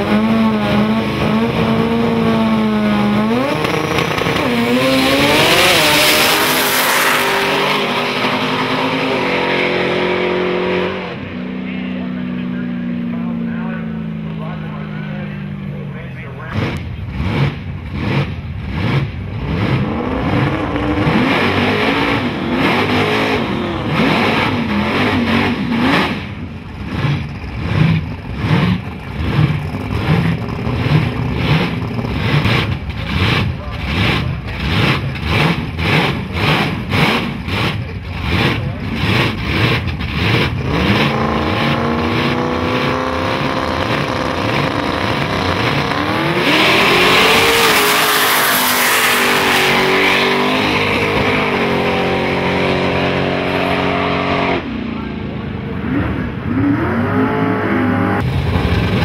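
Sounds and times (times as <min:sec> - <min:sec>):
choppy engine revs: 0:00.0 - 0:59.0
drag cars accelerating hard: 0:00.0 - 0:59.0
voices: 0:11.6 - 0:16.7.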